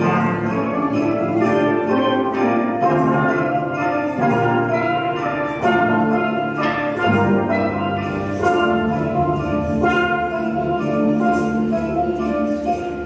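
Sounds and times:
steel pan ensemble playing: 0.0 - 13.0.

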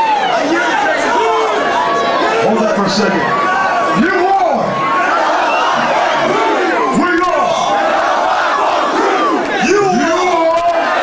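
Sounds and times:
crowd yelling and shouting: 0.0 - 11.0.

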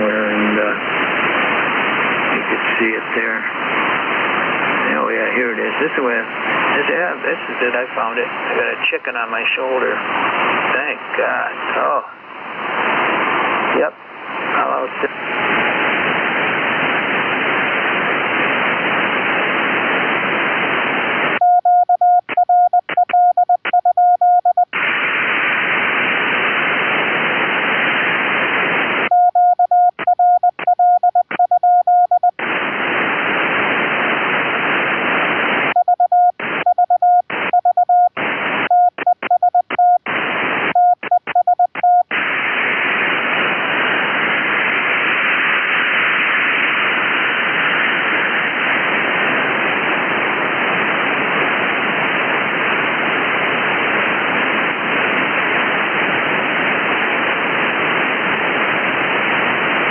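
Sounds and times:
radio receiver hiss: 0.0 - 59.9
morse code tone: 21.4 - 24.7, 29.1 - 32.4, 35.8 - 40.1, 40.8 - 42.1.

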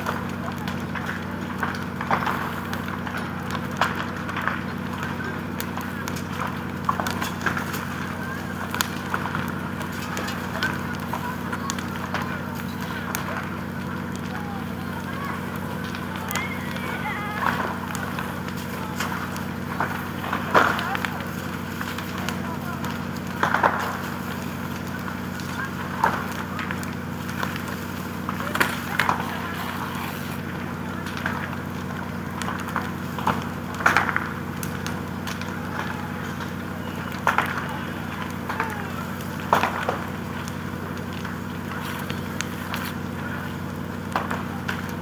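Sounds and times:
burning timber cracking: 0.0 - 45.0
faint voices: 0.0 - 45.0
pump engine droning: 0.0 - 45.0.

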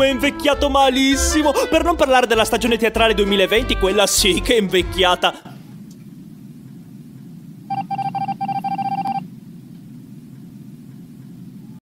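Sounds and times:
low steady drone: 0.0 - 11.8
electronic beeps: 7.7 - 9.3.

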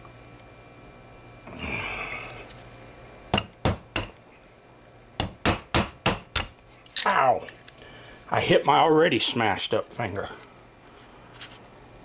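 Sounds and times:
hammer tapping metal: 3.3 - 4.2, 5.2 - 6.6.

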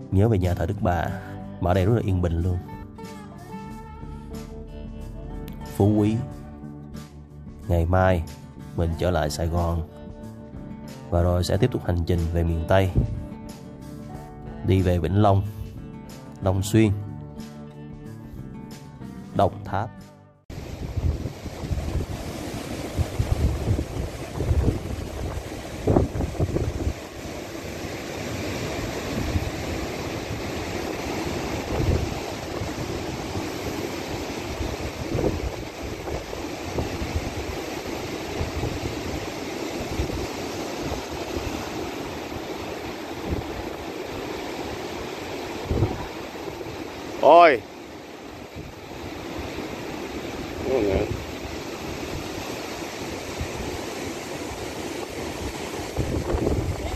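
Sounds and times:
wind buffeting microphone: 12.8 - 13.4, 20.5 - 47.2, 48.3 - 56.9
surf breaking on rocks: 20.5 - 56.9.

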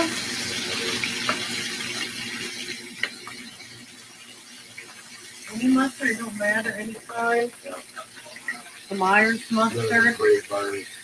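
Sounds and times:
patties sizzling in frying pan: 0.0 - 11.0.

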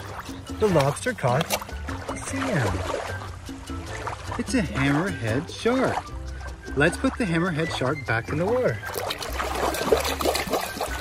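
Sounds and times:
shallow water splashing: 0.0 - 11.0.

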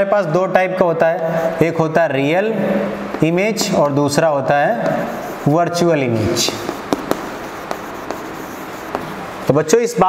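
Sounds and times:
chalk tapping and scratching on board: 1.0 - 9.7.

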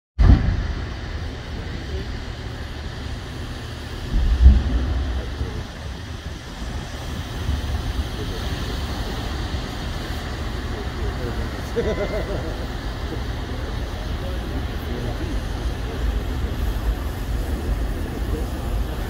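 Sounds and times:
large flames rumbling: 0.2 - 19.0
low flame burst: 0.2 - 19.0
person laughing: 11.7 - 12.6.

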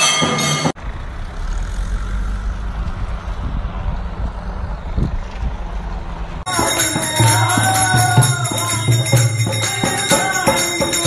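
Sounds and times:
music: 6.5 - 11.0.

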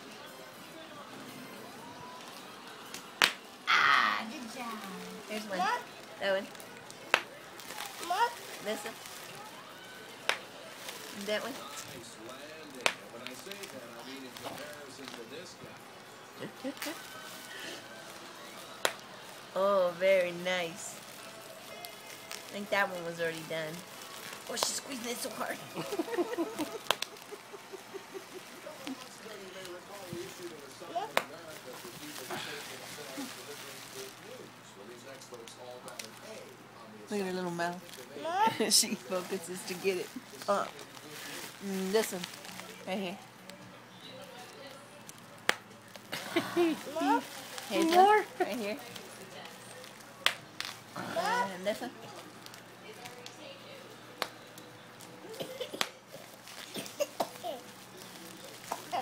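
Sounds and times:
bubble wrap popping: 2.2 - 3.9, 4.8 - 9.6, 10.2 - 15.3, 16.4 - 19.6, 20.2 - 34.4, 37.9 - 43.5, 44.6 - 53.4, 54.2 - 59.0
bubble wrap pop: 2.9 - 3.5, 12.8 - 13.8, 26.6 - 27.4, 50.2 - 50.8
person laughing: 25.8 - 28.7.

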